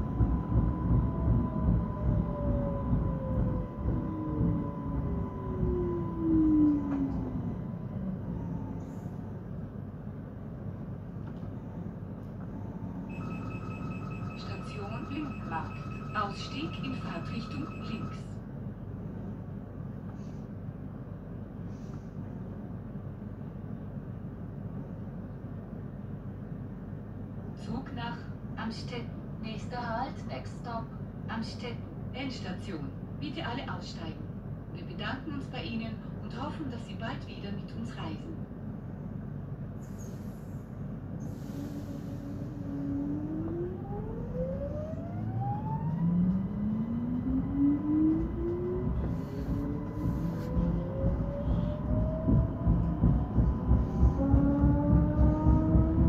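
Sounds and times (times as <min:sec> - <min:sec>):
train ventilation hum and rumble: 0:00.0 - 0:56.0
second rising whine: 0:41.6 - 0:56.0.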